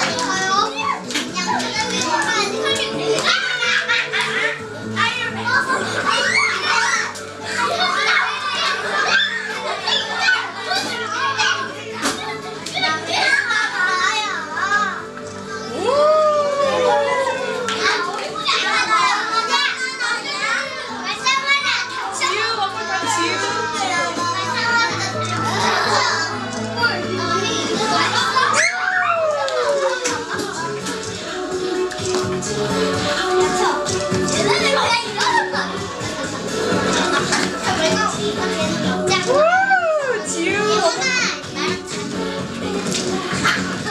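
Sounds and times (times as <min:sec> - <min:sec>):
high child's voice: 0:00.0 - 0:31.0, 0:33.3 - 0:42.2
children chattering and calling out: 0:00.0 - 0:43.9
music playing: 0:00.0 - 0:43.9.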